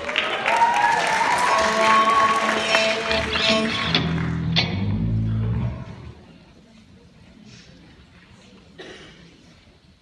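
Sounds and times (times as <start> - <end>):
electric guitar held notes: 1.7 - 6.1.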